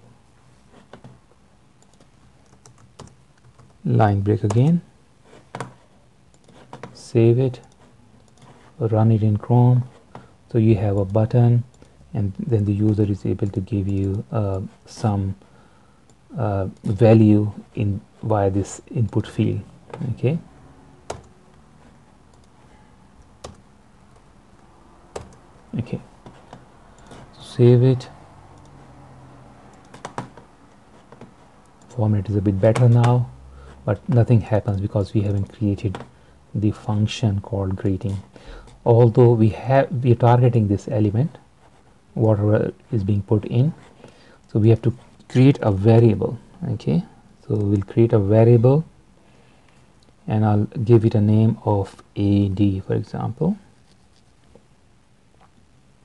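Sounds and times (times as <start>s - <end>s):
computer clicks: 1.8s - 3.8s, 7.6s - 8.6s, 10.8s - 12.0s, 13.3s - 14.7s, 21.0s - 21.4s, 22.3s - 22.6s, 23.2s - 27.2s, 29.7s - 32.0s
faint keyboard keystrokes: 25.1s - 27.2s, 29.7s - 32.0s.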